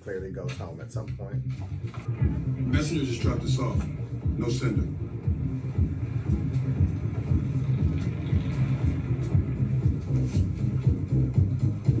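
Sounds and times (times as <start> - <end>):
electronic music with pulsing beat: 0.0 - 12.0.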